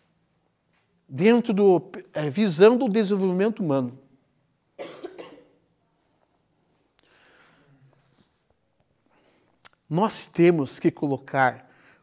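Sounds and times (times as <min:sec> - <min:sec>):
person coughing: 0:04.8 - 0:05.6.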